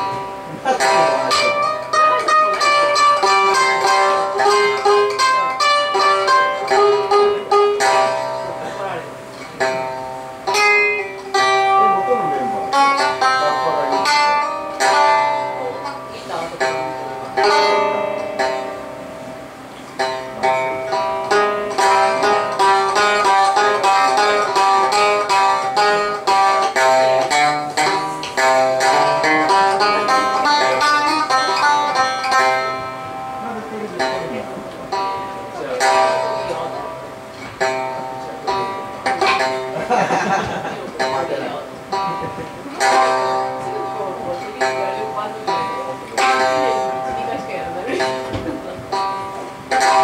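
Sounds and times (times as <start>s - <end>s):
plucked string instrument: 0.0s - 50.0s.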